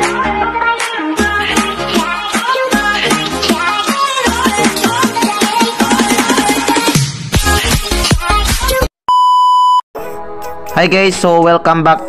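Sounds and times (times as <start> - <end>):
background music: 0.0 - 8.5, 10.0 - 12.0
man talking: 10.8 - 12.0.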